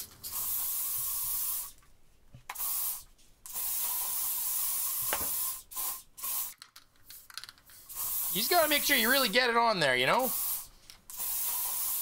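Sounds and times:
aerosol spray can hissing: 0:00.2 - 0:01.8, 0:02.5 - 0:06.6, 0:07.8 - 0:09.3, 0:10.1 - 0:12.0.

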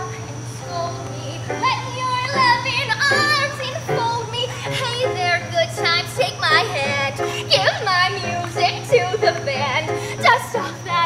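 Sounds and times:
digital piano accompaniment: 0:00.0 - 0:11.0
woman singing: 0:00.0 - 0:11.0.

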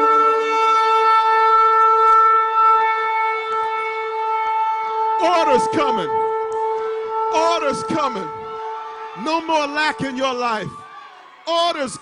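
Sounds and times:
shofar blowing held note: 0:00.0 - 0:10.1.

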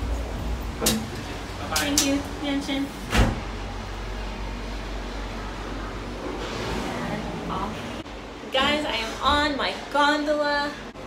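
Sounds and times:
gondola cabin hum: 0:00.0 - 0:11.0.

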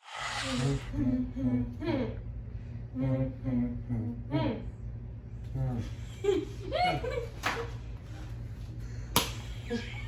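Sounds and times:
sharp snap: 0:09.1 - 0:09.4.

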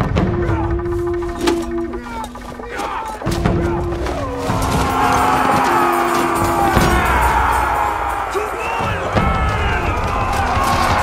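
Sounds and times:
low droning music: 0:00.0 - 0:11.0
men shouting and crying out: 0:00.0 - 0:11.0.

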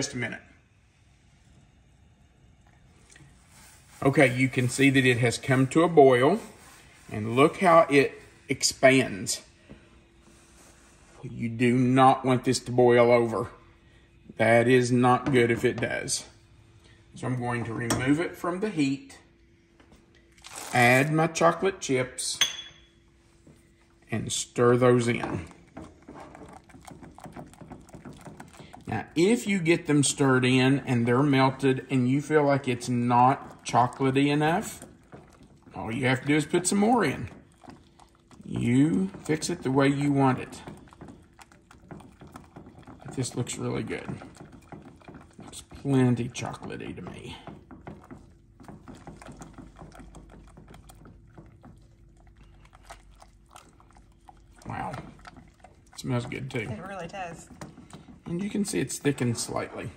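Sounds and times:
whisk tapping a steel pan: 0:24.8 - 0:52.0.

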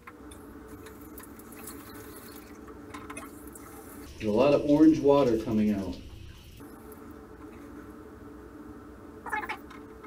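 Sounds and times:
shower water running: 0:00.2 - 0:08.4
low hum: 0:03.8 - 0:10.0.

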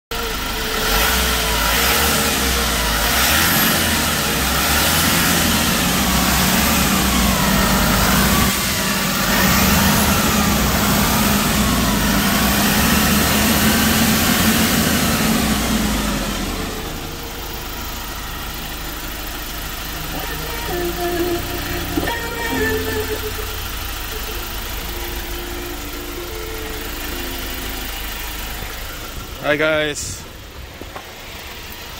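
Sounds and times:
truck engine running: 0:00.1 - 0:31.9.

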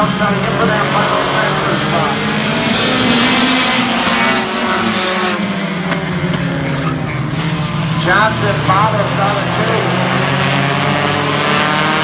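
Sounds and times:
race car engines running hard: 0:00.0 - 0:12.0
tyre and exhaust noise: 0:00.0 - 0:12.0.

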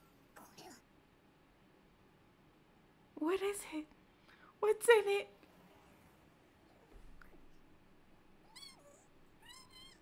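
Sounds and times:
faint high-pitched cries: 0:08.4 - 0:10.0.

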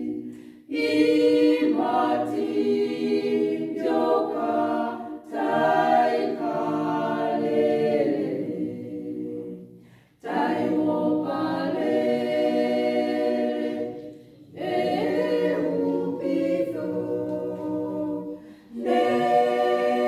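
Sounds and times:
women's choir singing a cappella: 0:00.0 - 0:20.0.

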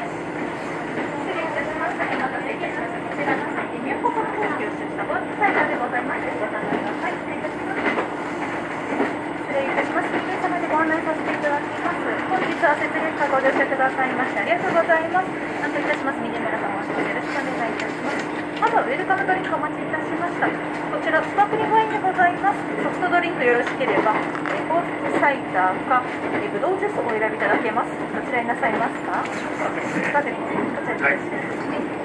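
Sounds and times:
passengers chattering: 0:00.0 - 0:32.0
railcar engine hum and running noise: 0:00.0 - 0:32.0.

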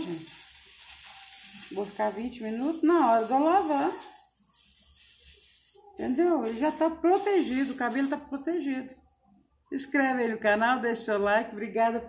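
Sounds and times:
plastic shower cap rustling: 0:00.0 - 0:08.2.

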